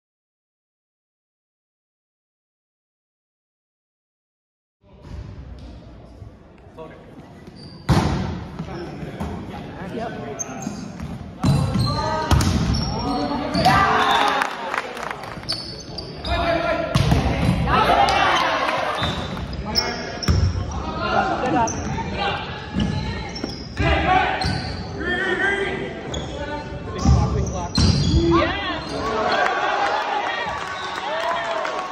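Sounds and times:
people shouting in a hall: 0:17.6 - 0:19.2, 0:28.2 - 0:31.9.

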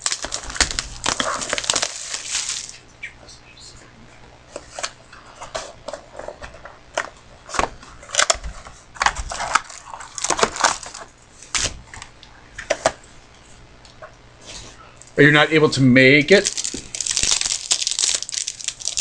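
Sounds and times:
cardboard and wrapper crackling: 0:00.0 - 0:02.9, 0:04.5 - 0:12.2, 0:16.3 - 0:19.0.

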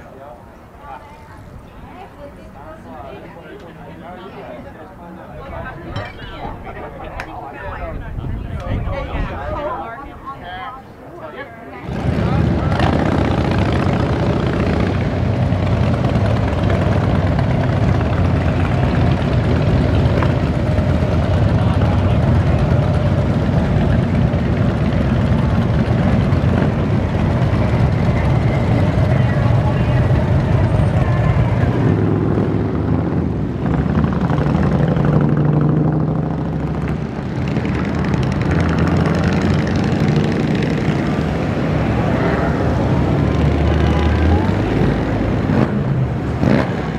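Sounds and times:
motorcycles riding past: 0:11.3 - 0:46.9.

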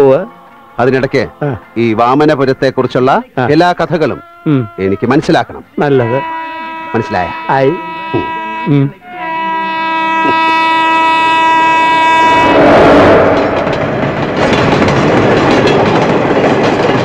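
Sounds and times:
passenger train rushing past: 0:05.5 - 0:17.0
train horn blast: 0:05.8 - 0:14.6.

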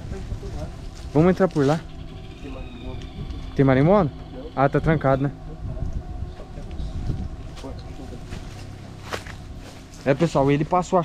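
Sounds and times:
faint voices: 0:00.0 - 0:11.0
wind on microphone: 0:01.9 - 0:08.8.

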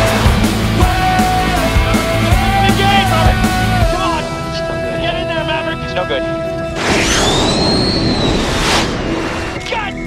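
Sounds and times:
rock music chords: 0:00.0 - 0:04.5
jet engine passing: 0:06.7 - 0:09.6.

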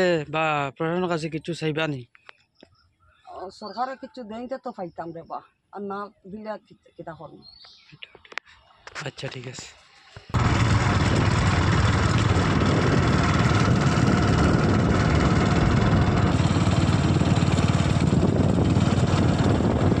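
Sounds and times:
vehicle rumble from on board: 0:10.3 - 0:20.0.

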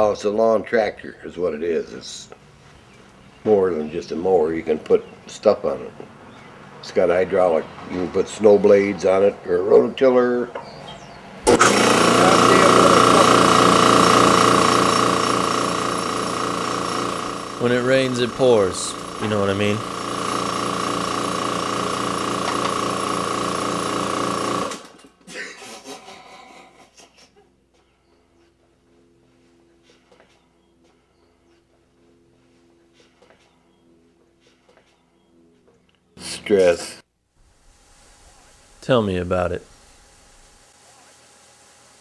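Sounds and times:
lawn tractor engine running: 0:10.6 - 0:25.2, 0:37.4 - 0:42.0
high steady whine: 0:11.5 - 0:23.7, 0:37.4 - 0:42.0.

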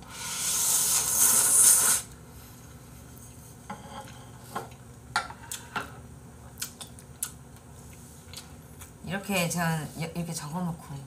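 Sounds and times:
man slurping food: 0:00.1 - 0:02.1.

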